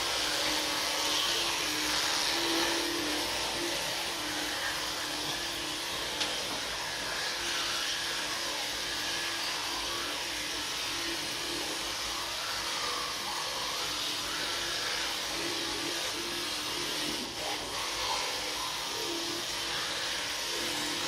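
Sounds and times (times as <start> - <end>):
electric toothbrush buzzing: 0.0 - 21.0.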